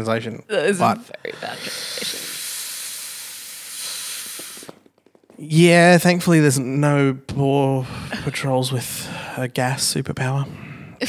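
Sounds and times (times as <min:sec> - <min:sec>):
steady hiss: 0:01.2 - 0:04.8.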